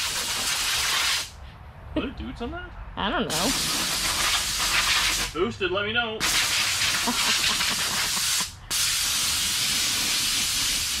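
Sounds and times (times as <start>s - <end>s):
compressed air hissing: 0.0s - 1.4s, 3.3s - 5.4s, 6.2s - 11.0s.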